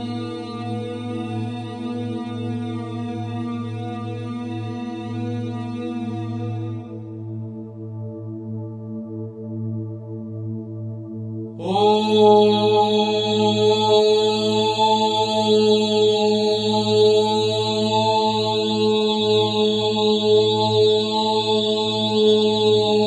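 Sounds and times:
voice chanting a long syllable: 0:11.6 - 0:23.0.

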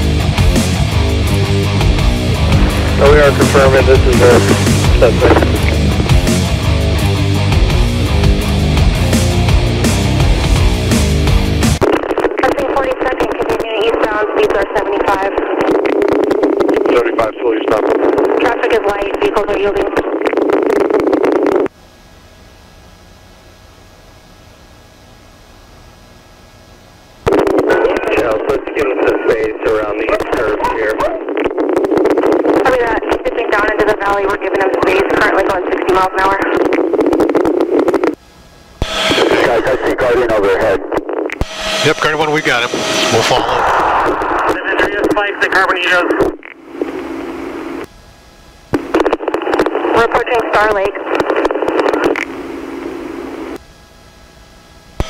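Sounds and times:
steady low hiss: 0:01.3 - 0:08.1, 0:36.7 - 0:53.6
radio beep: 0:02.4 - 0:06.5, 0:38.8 - 0:47.9
voice over two-way radio: 0:02.5 - 0:06.0, 0:12.4 - 0:15.7, 0:16.6 - 0:20.2, 0:27.6 - 0:31.4, 0:32.6 - 0:36.9, 0:39.3 - 0:40.9, 0:44.4 - 0:47.1, 0:48.9 - 0:52.3
radio keying click: 0:03.5 - 0:06.2, 0:51.1 - 0:52.4.

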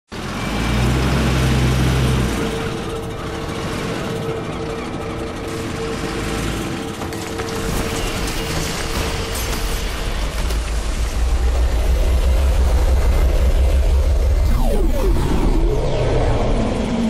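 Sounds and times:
truck engine deep hum: 0:00.2 - 0:08.5, 0:09.8 - 0:17.0
steady whine: 0:09.9 - 0:17.0.

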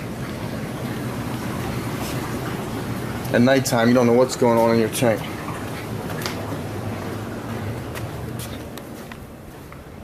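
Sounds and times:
rushing hiss of circulating water: 0:00.0 - 0:06.0
low hum of aquarium pumps: 0:00.0 - 0:10.0.

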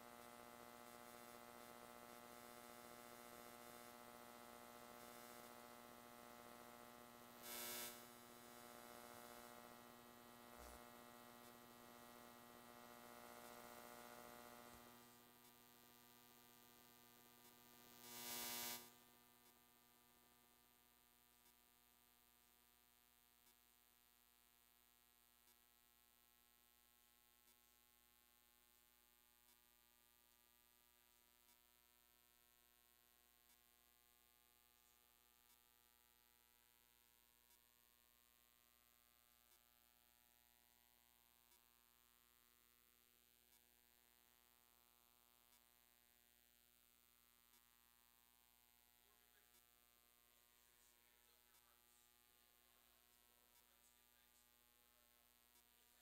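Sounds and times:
electrical mains hum: 0:00.0 - 0:56.0.

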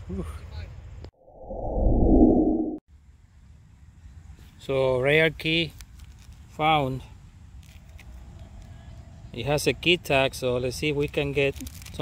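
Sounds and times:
whoosh sound effect: 0:01.3 - 0:02.8
faint outdoor background noise: 0:02.9 - 0:12.0.

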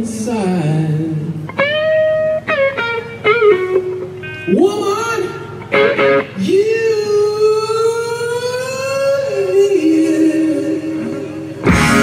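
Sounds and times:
man singing a long high note: 0:06.4 - 0:11.7.

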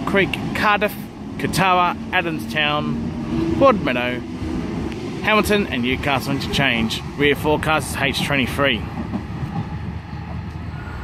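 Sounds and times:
man announcing station: 0:00.0 - 0:04.3, 0:05.2 - 0:08.9
electric train humming: 0:00.0 - 0:11.0.

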